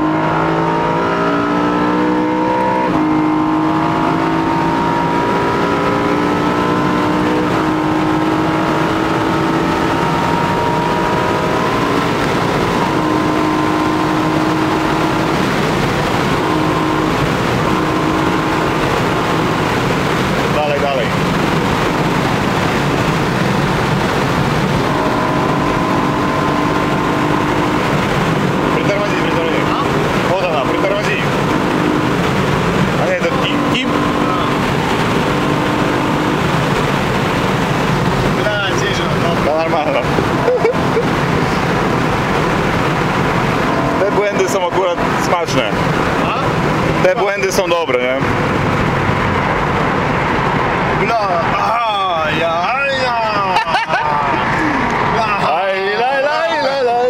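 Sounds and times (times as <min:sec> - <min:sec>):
car engine inside cabin: 0:00.0 - 0:57.0
tyre and road noise: 0:00.0 - 0:57.0.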